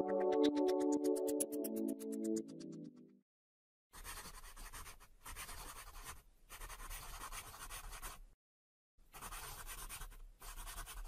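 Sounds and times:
marker scribbling on paper: 0:04.0 - 0:08.2, 0:09.2 - 0:11.0.

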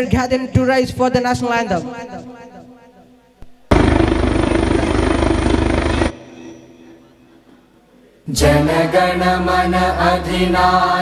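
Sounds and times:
loud noise burst with low rattle: 0:03.7 - 0:06.1.

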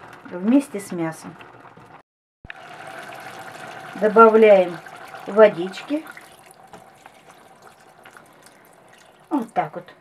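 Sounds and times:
water pouring into a pot: 0:02.5 - 0:09.7.

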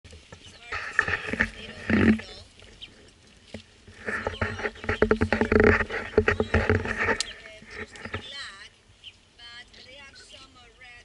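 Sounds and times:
rough pulsing animal calls: 0:00.3 - 0:03.1, 0:03.9 - 0:09.3.

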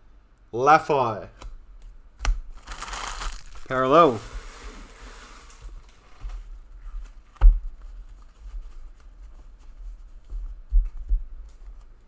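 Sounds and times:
cards sliding on tabletop: 0:04.0 - 0:06.3.

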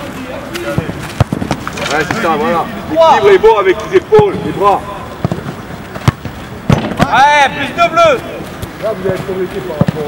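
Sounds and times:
football being struck: 0:00.7 - 0:01.8, 0:05.2 - 0:07.2.

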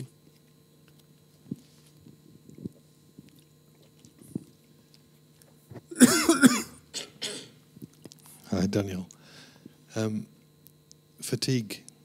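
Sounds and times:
person coughing: 0:05.9 - 0:07.6.

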